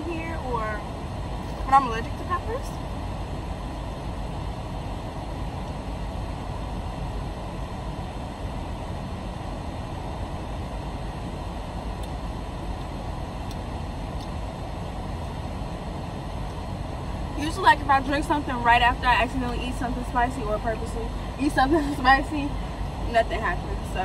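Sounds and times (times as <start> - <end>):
car cabin rumble and air rush: 0.0 - 24.0.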